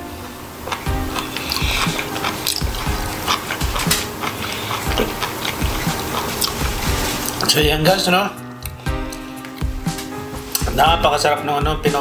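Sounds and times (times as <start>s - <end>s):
background music: 0.0s - 12.0s
wet chewing and mouth clicks: 0.6s - 7.5s, 8.6s - 10.7s.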